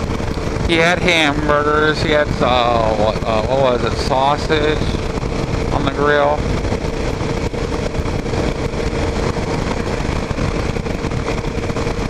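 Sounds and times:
motorcycle engine hum: 0.0 - 12.0
wind and road rush: 0.0 - 12.0.

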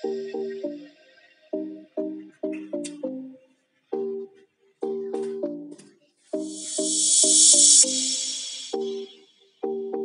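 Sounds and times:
high hiss: 6.4 - 9.2.

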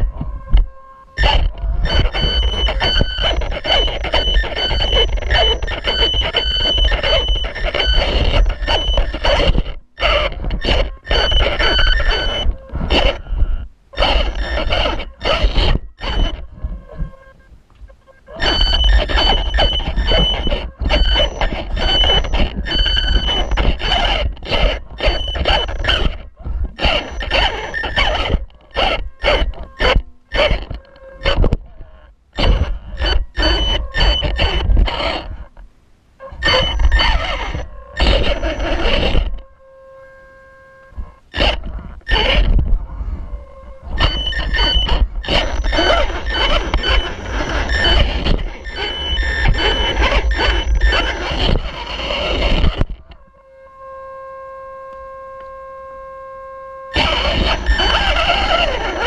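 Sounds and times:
electric motor whining: 0.0 - 35.6, 36.2 - 59.0
tyres scraping on stone: 1.2 - 13.3, 14.0 - 17.1, 18.4 - 31.6, 43.9 - 52.9, 57.0 - 59.0.

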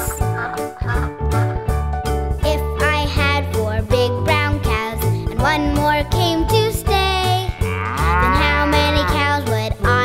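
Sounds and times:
children's song music with bass: 0.0 - 10.0
cow mooing: 7.5 - 9.2.

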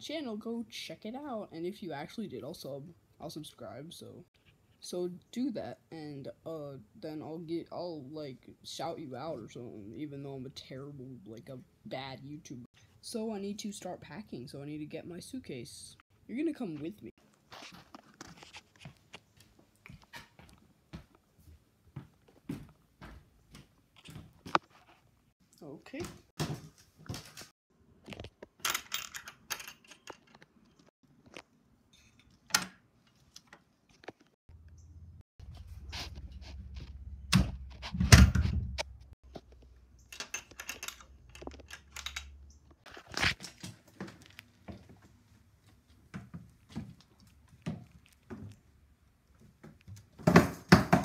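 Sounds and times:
footsteps: 16.8 - 25.1.

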